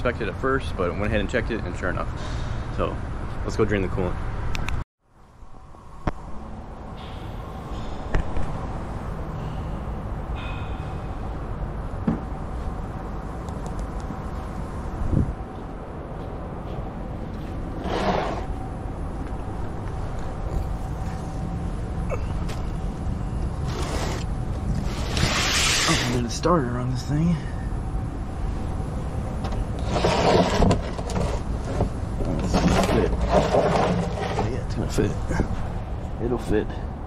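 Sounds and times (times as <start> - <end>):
workshop low rumble and hum: 5.9 - 37.0.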